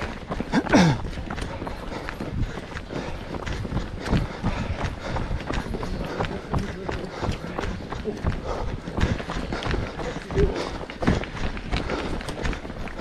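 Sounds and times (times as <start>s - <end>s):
running footsteps on tarmac: 0.0s - 13.0s.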